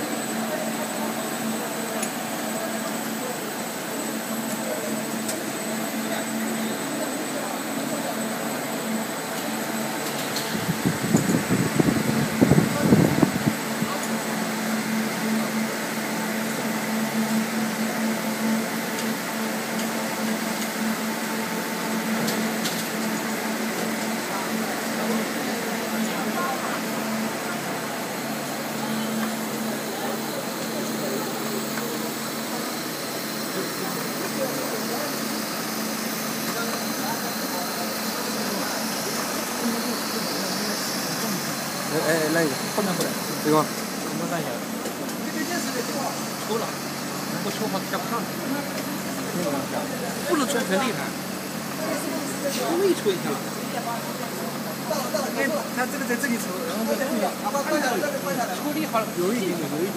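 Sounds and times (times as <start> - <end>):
extruder drive drone: 0.0 - 52.2
small electric fans humming: 0.0 - 59.9.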